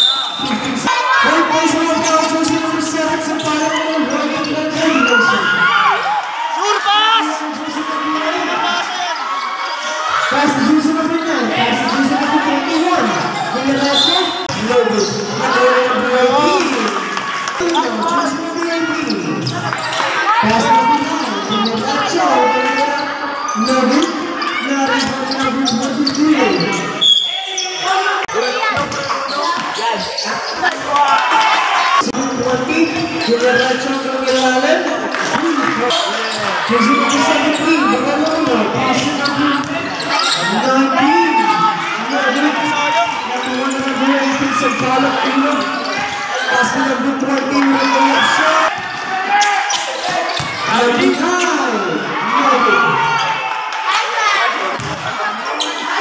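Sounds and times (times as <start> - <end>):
voices talking and calling out: 0.0 - 56.0
basketball bouncing on hard court: 54.8 - 55.1.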